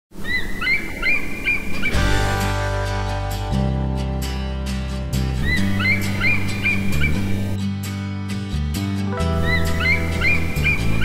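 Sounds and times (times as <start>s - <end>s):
eagle piping chirps: 0.2s - 2.1s, 5.4s - 7.6s, 9.3s - 11.0s.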